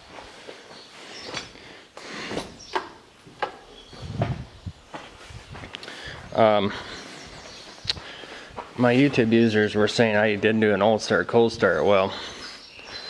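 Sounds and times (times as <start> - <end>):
footsteps on dirt floor: 0.0 - 13.0.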